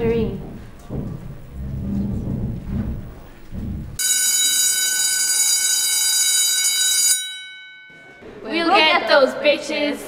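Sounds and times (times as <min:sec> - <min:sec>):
low rumble: 0:00.0 - 0:04.0.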